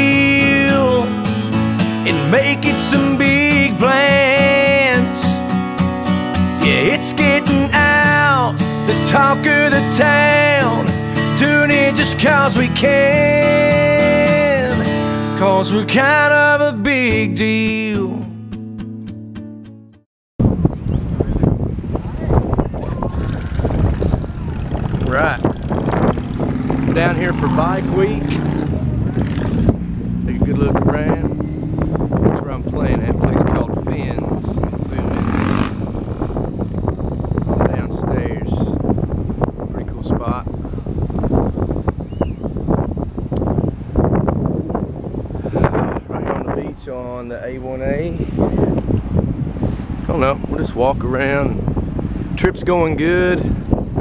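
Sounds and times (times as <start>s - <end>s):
voice: 6.6s - 10.8s, 24.5s - 25.4s, 26.9s - 28.4s, 30.3s - 31.3s, 32.3s - 35.3s, 37.7s - 38.8s, 39.7s - 40.5s, 46.1s - 48.3s, 50.1s - 51.6s, 52.4s - 53.5s
wind buffeting microphone: 20.4s - 54.0s.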